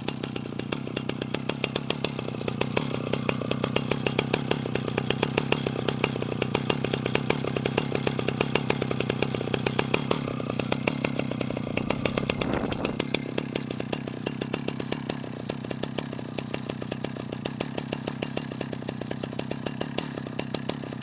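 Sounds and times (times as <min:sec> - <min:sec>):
chainsaw engine idling: 0:00.0 - 0:21.0.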